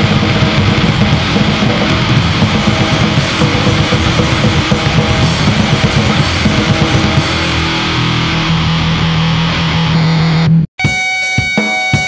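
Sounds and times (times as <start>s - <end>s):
fast dense drumming: 0.0s - 8.2s
distorted guitars: 0.0s - 12.0s.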